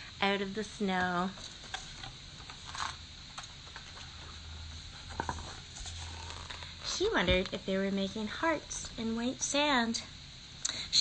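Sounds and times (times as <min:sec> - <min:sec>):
low steady hum: 0:00.0 - 0:11.0
paper rustling: 0:01.3 - 0:03.0, 0:03.6 - 0:07.5
page turning: 0:01.4 - 0:06.7.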